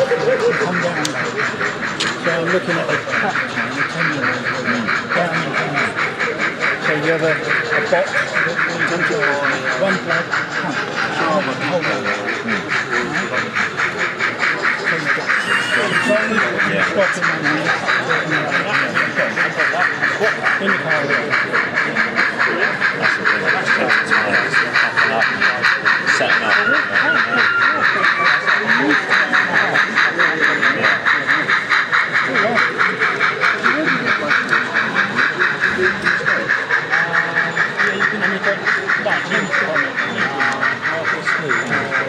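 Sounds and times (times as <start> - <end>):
hall chatter: 0.0 - 42.0
model steam locomotive chuffing: 0.0 - 42.0.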